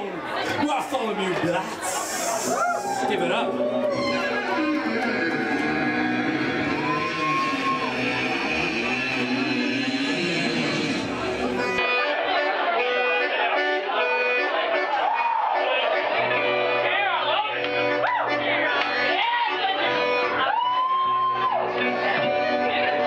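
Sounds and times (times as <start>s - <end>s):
crowd voices: 0.0s - 23.0s
live band with guitars: 1.8s - 16.8s, 17.5s - 23.0s.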